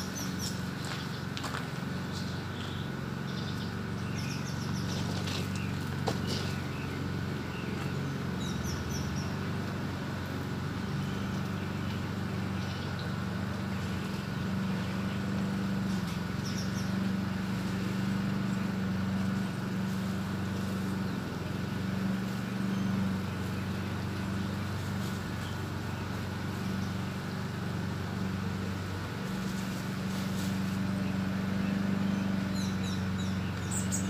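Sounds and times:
car engine idling: 0.0 - 34.0
bird chirps: 2.1 - 9.5, 10.9 - 13.3, 14.8 - 17.2, 31.0 - 34.0.

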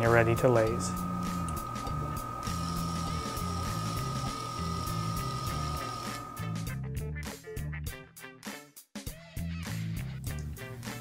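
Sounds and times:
wire stripper high whine: 0.0 - 6.8.

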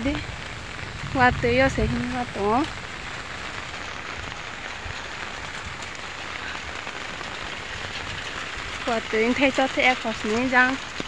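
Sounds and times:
rain on umbrella and road: 0.0 - 11.0.

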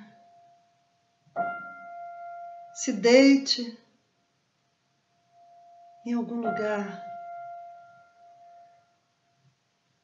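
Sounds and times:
high ringing tone: 5.3 - 8.9.

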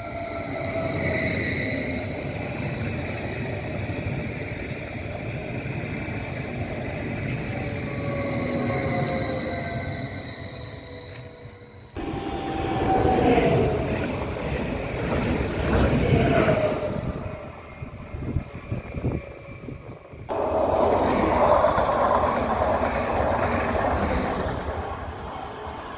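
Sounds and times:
electric train passing: 0.0 - 25.9.

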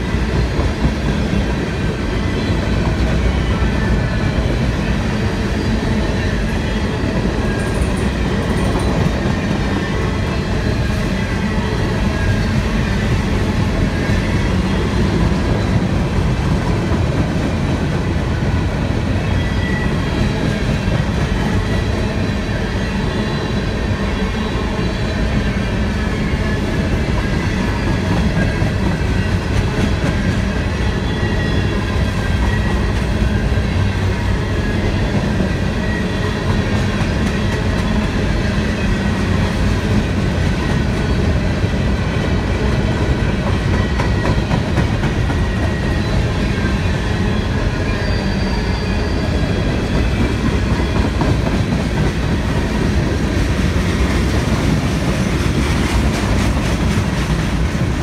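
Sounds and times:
freight train rolling past: 0.0 - 58.0.

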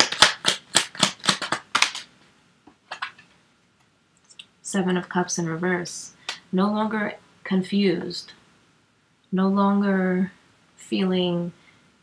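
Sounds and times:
cards being shuffled: 0.0 - 2.1, 2.9 - 3.3.

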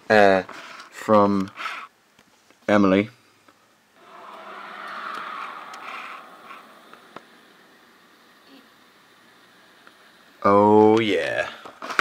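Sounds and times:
hiss-like noise from phone speaker: 4.0 - 12.0.

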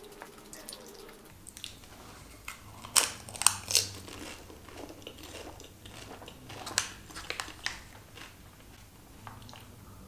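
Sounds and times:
soft chewing: 0.0 - 10.0
crisp shell crunching: 1.5 - 8.8.

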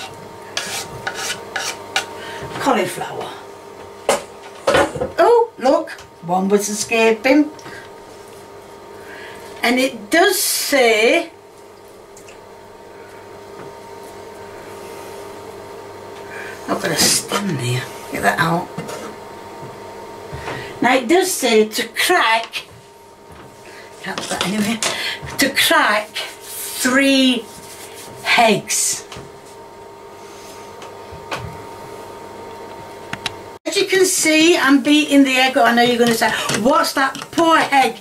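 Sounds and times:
spatula pushing food in pan: 0.0 - 2.1
steady low hum: 0.0 - 38.0.

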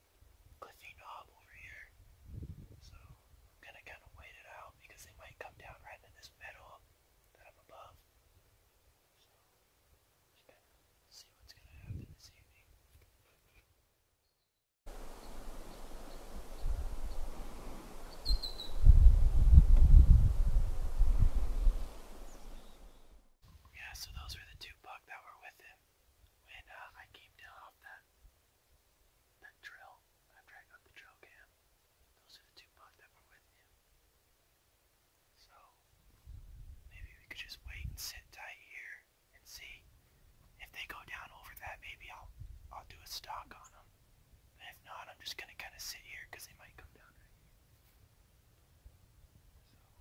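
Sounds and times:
man whispering softly: 0.6 - 2.0, 2.8 - 8.1, 9.1 - 9.6, 10.3 - 13.8, 23.7 - 28.1, 29.4 - 33.8, 35.4 - 35.9, 36.9 - 39.9, 40.6 - 43.9, 44.6 - 47.4, 49.5 - 50.0
wind buffeting microphone: 2.0 - 3.2, 11.8 - 12.3, 14.9 - 22.9, 36.2 - 36.9
short bird chirp: 18.0 - 18.9, 22.2 - 23.2.

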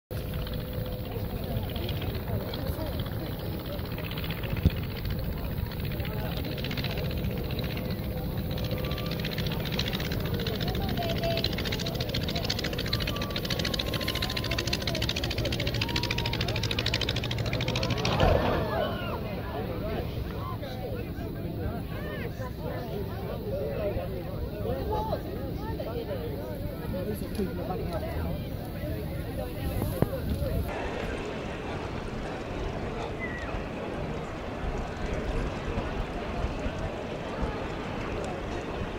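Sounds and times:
propeller aircraft engine: 0.1 - 38.9
wind noise on microphone: 0.2 - 17.2, 28.1 - 38.9.

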